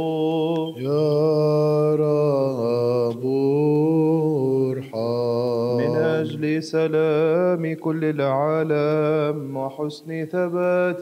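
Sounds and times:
man singing liturgical chant: 0.0s - 11.0s.

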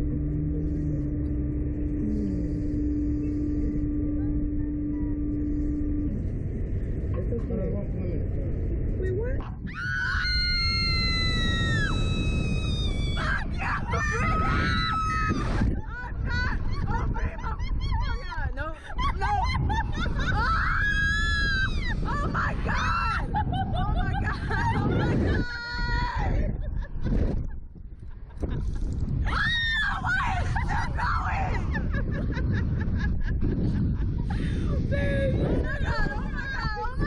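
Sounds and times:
wind rumble on microphone: 0.0s - 37.0s
women screaming: 9.7s - 15.6s, 20.2s - 23.4s, 29.2s - 31.8s.

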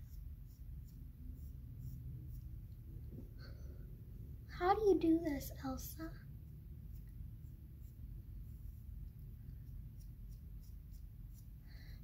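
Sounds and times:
eyebrow brush scratching: 0.0s - 3.4s, 6.3s - 11.6s
low steady rumble: 0.0s - 12.0s.

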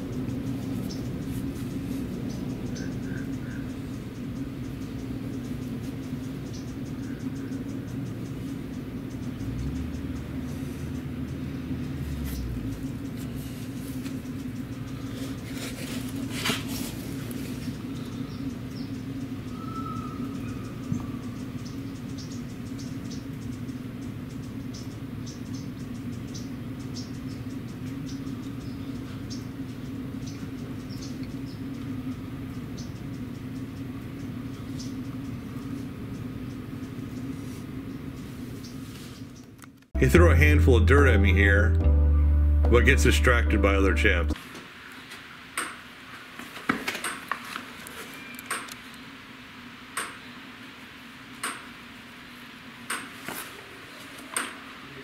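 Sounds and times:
low machine hum: 0.0s - 38.7s, 40.0s - 44.4s.

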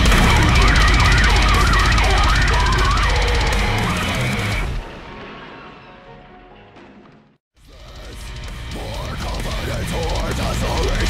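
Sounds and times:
lead guitar line: 0.0s - 4.8s
heavy metal band playing: 0.0s - 5.0s, 7.6s - 11.0s.

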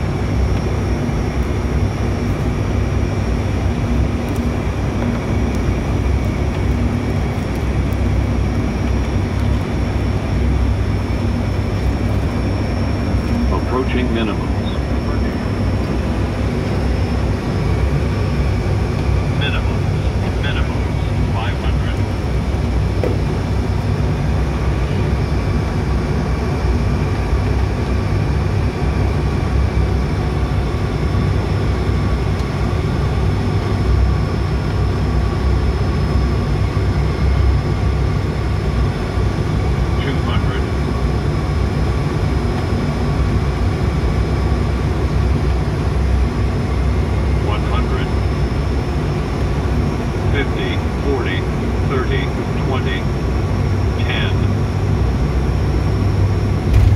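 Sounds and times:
steady whining tones: 0.0s - 56.9s
turboprop engines rumbling: 0.0s - 56.9s.

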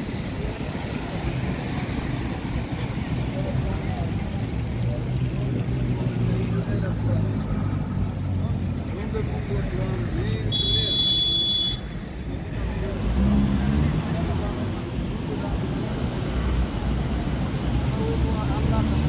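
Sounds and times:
car engines idling in traffic: 0.0s - 19.0s
voices in background: 0.0s - 19.0s.

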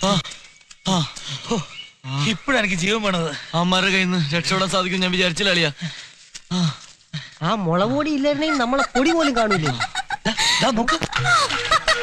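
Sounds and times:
men making hen-like clucking calls: 7.8s - 12.0s.

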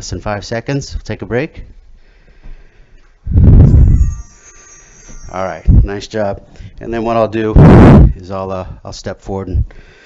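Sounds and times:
heavy breath into microphone: 2.0s - 5.2s, 6.5s - 6.8s, 9.7s - 10.0s.

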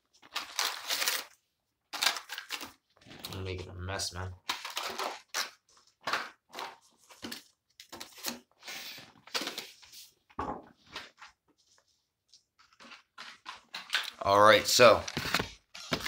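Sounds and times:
packaging tearing and crinkling: 0.2s - 3.4s, 4.4s - 8.5s.

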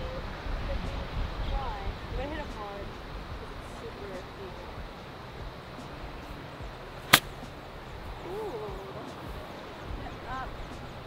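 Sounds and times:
golf club striking ball: 7.0s - 7.6s.

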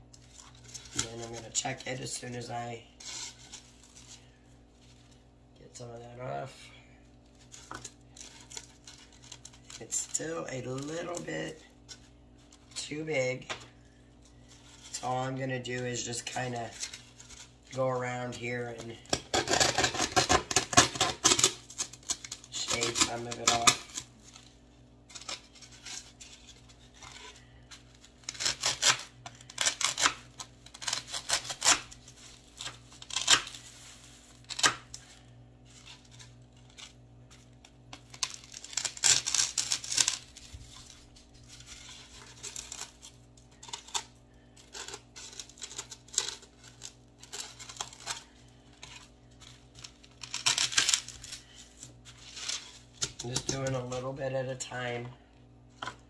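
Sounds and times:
knife scraping styrofoam: 0.2s - 5.2s, 7.3s - 13.4s, 14.3s - 54.0s.

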